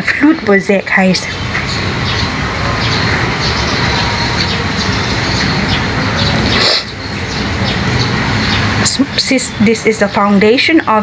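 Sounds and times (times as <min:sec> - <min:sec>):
steady low rumbling noise: 0:00.0 - 0:11.0.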